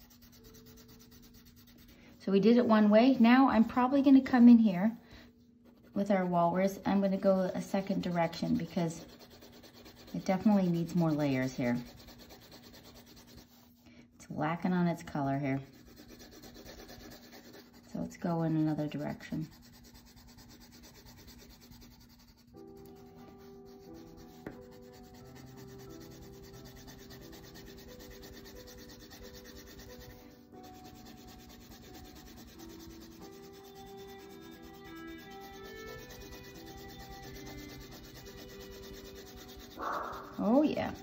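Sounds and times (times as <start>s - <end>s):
colored pencil scratching on paper: 0.0s - 41.0s.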